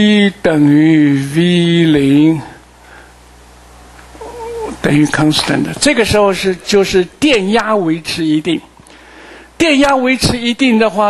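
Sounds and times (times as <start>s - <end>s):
man speaking: 0.0s - 2.6s, 4.7s - 8.7s, 9.6s - 11.0s
man humming: 4.2s - 5.3s.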